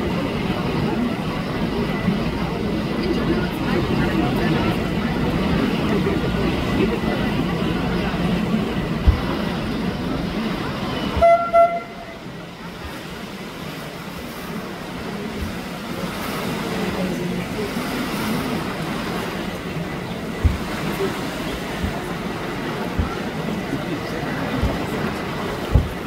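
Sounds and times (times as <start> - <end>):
low engine rumble: 0.0 - 26.0
voices: 0.0 - 26.0
boat horn toots: 11.0 - 12.3.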